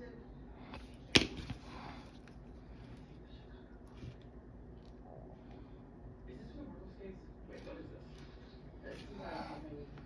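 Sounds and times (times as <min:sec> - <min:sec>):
low room noise: 0:00.0 - 0:10.0.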